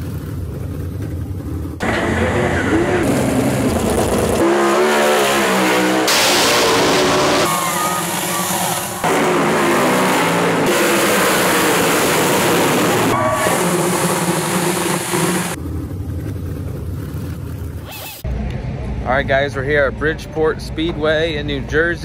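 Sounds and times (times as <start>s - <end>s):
deep low engine rumble: 0.0s - 4.4s, 12.6s - 22.0s
racing car engines revving: 0.0s - 17.9s.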